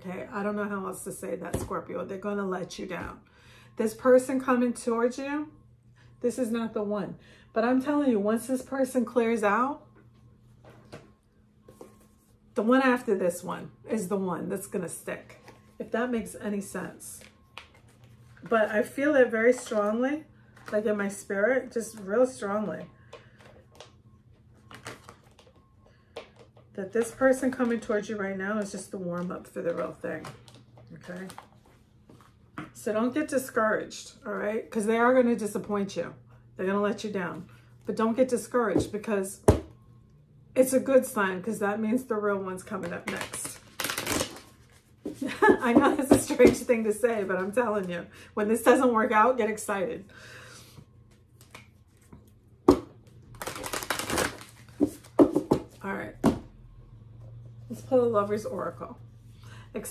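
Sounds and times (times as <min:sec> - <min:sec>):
cards being shuffled: 0:43.0 - 0:45.2, 0:53.3 - 0:55.7.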